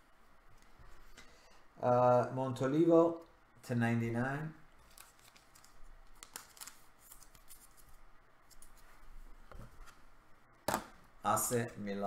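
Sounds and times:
cards and plastic sleeves rustling: 4.8s - 9.0s.

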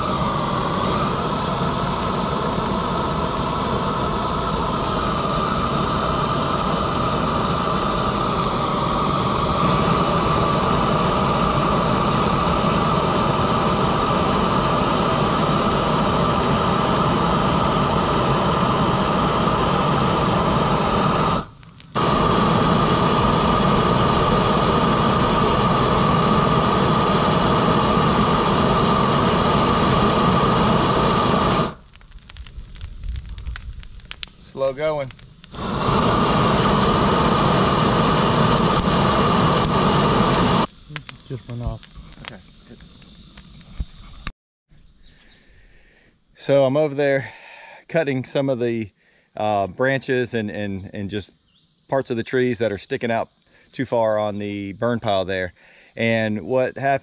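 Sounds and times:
propane torch hissing: 0.0s - 44.3s, 45.1s - 57.0s.

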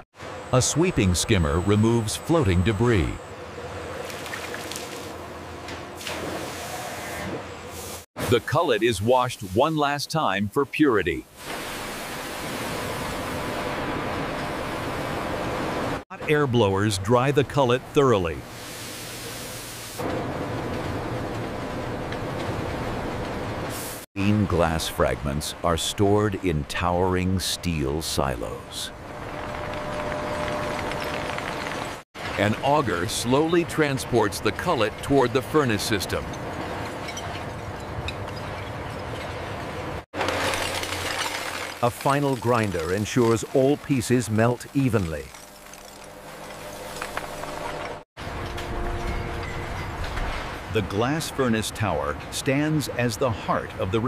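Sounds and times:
water spraying and splashing: 4.0s - 5.2s, 11.3s - 14.8s, 40.2s - 47.8s
auger conveyor machine noise: 39.9s - 49.2s
glass being crushed in grinder: 40.2s - 42.6s, 44.9s - 47.4s.

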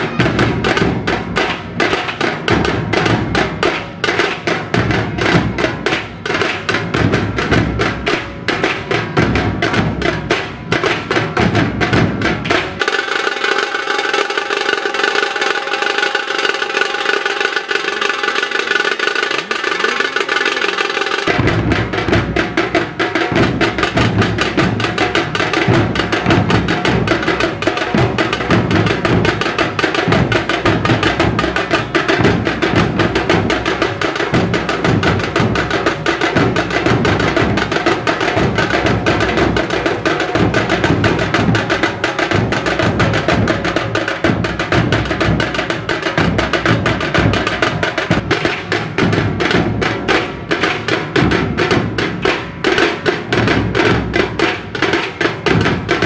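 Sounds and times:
fast loud drumming: 0.0s - 56.0s.

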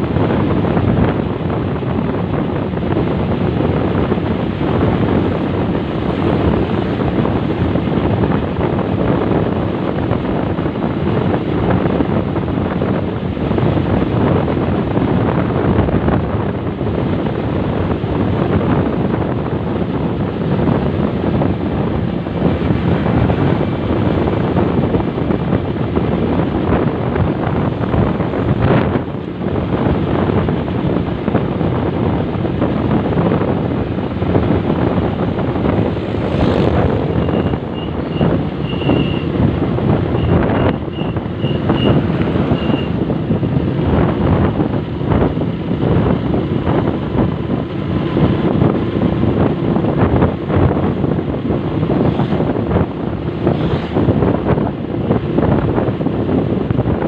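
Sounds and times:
wind rush over microphone: 0.0s - 57.0s
motorcycle engine running: 13.6s - 57.0s.

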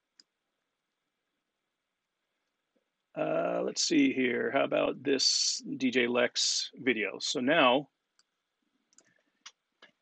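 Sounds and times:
computer mouse clicks: 8.2s - 10.0s.

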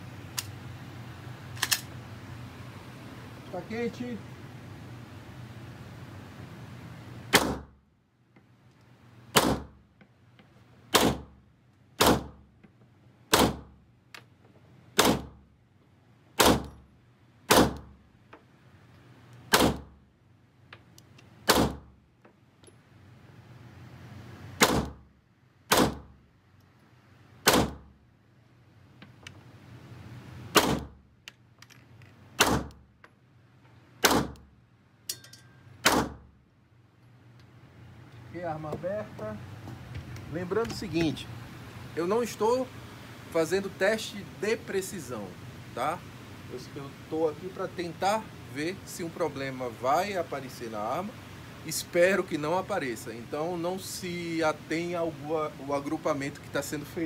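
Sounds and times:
pistol shots with echo: 7.3s - 7.7s, 24.6s - 25.0s, 25.7s - 26.1s, 27.4s - 27.9s, 35.8s - 36.2s.

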